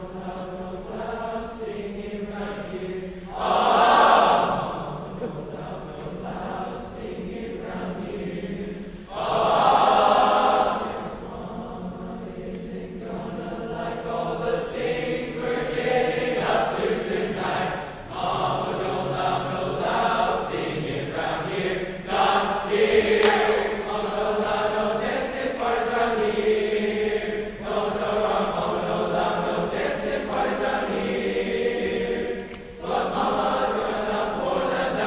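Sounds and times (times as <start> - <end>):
children's choir singing: 0.0 - 35.0.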